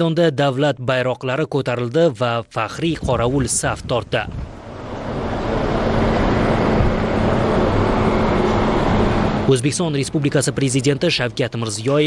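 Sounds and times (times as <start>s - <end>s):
car engine and tyre noise: 4.4s - 12.0s.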